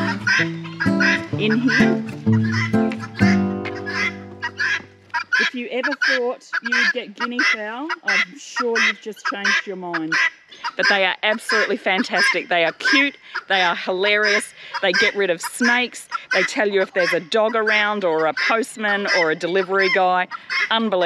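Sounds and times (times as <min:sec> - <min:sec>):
background music with bass: 0:00.0 - 0:05.0
guineafowl calling: 0:00.0 - 0:21.0.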